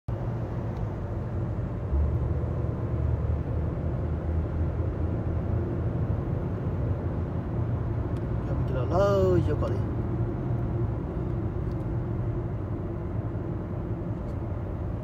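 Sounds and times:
road and engine rumble in car: 0:00.1 - 0:15.0.

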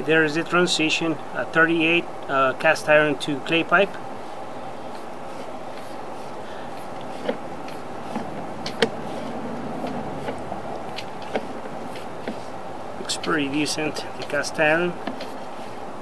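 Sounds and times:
steady hum: 0:00.0 - 0:16.0.

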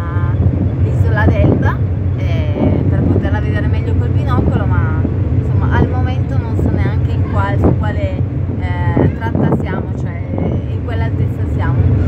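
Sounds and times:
low engine drone: 0:00.0 - 0:12.0
woman talking: 0:00.0 - 0:12.0.

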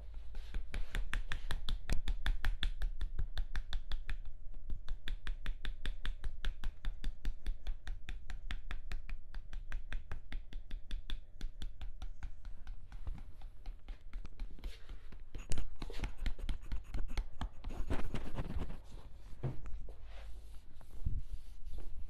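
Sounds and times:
stick tapping on arm: 0:00.1 - 0:18.7.

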